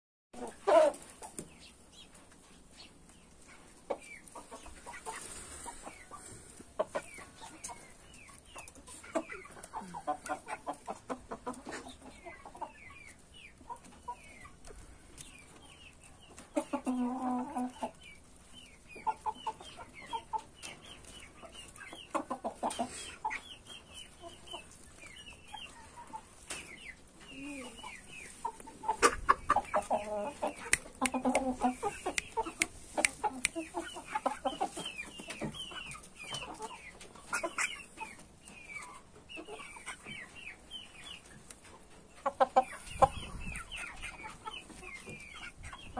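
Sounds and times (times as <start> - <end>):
chicks peeping: 0.4 - 45.9
young chickens clucking: 0.4 - 45.9.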